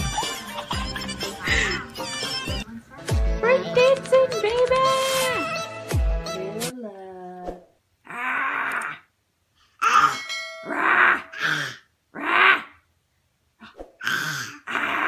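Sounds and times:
background music: 0:00.0 - 0:06.8
baby huffing and grunting: 0:14.0 - 0:15.0.

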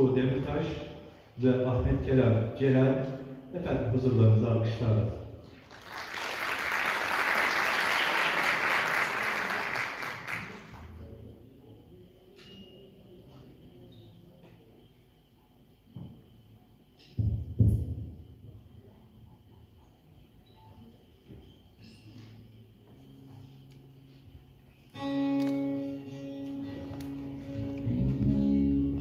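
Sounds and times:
audience applauding: 0:05.6 - 0:10.9.

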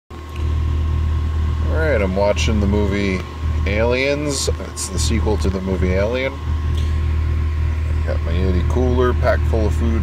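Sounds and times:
low mechanical hum: 0:00.1 - 0:10.0
man speaking: 0:01.6 - 0:06.4, 0:08.0 - 0:10.0.

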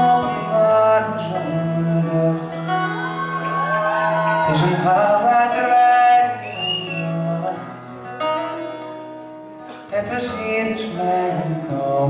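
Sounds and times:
man singing: 0:00.0 - 0:03.0, 0:04.3 - 0:07.9, 0:09.8 - 0:12.0.

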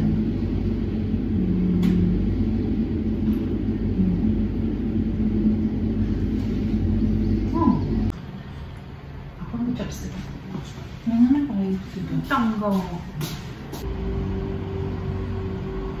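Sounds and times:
steady low rumble with hum: 0:00.0 - 0:16.0.

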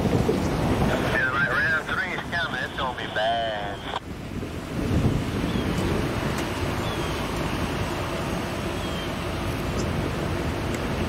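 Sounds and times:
diesel locomotives rumbling: 0:00.0 - 0:11.0.

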